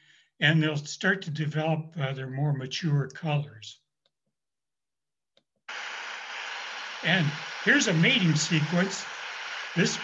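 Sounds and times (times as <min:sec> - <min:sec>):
steady hiss: 0:05.7 - 0:10.0.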